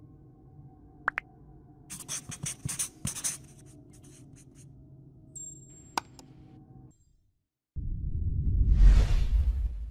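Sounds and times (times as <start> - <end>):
marker scratching handwriting: 1.9 - 4.6.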